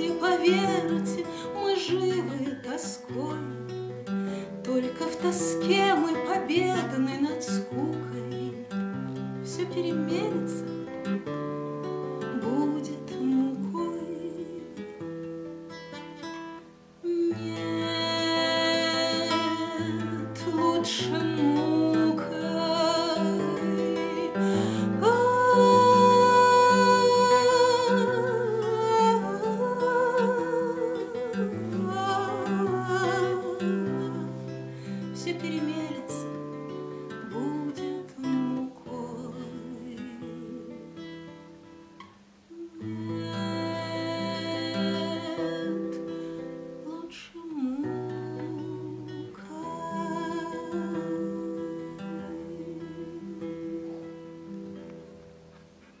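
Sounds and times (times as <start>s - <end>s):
woman singing with vibrato: 0.0s - 8.8s, 9.4s - 11.2s, 11.9s - 15.1s, 16.9s - 41.3s, 42.5s - 54.8s
nylon-string guitar: 0.0s - 56.0s.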